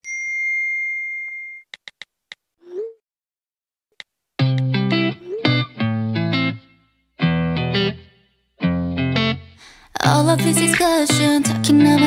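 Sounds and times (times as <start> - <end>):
bright bell-like ding: 0.0 - 1.6.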